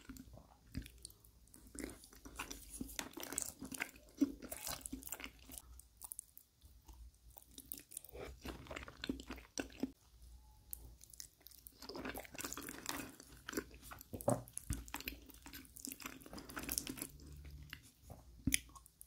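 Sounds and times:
wet chewing: 0.0s - 10.0s, 10.7s - 19.0s.

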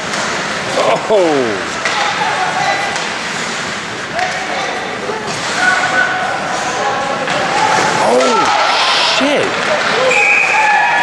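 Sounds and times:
echoing hall background noise: 0.0s - 11.0s
spectators' voices: 0.9s - 10.4s.

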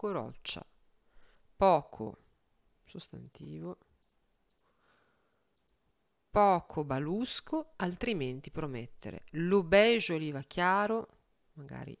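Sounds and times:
faint computer mouse clicks: 4.0s - 4.8s, 5.5s - 5.8s.

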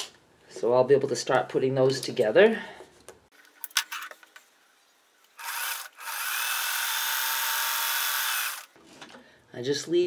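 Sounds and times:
electric sewing machine stitching: 5.4s - 8.7s.

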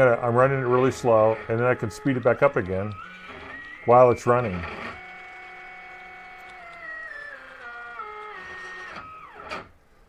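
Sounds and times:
stepper motors whining: 0.0s - 9.8s.

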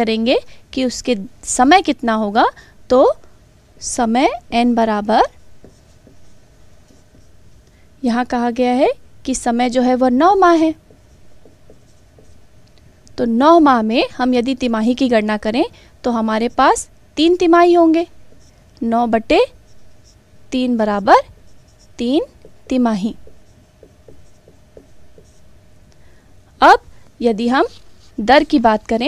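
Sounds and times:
person speaking: 3.8s - 7.4s, 8.0s - 12.5s, 13.1s - 25.5s, 26.6s - 29.0s
writing scratches: 5.3s - 7.7s, 10.2s - 12.8s, 17.8s - 18.7s, 19.5s - 20.3s, 21.3s - 25.6s, 27.5s - 28.6s.

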